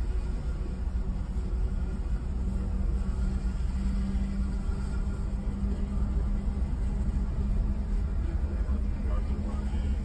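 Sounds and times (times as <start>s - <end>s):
bus engine and tyres rumbling: 0.0s - 10.0s
constant low hum: 0.0s - 10.0s.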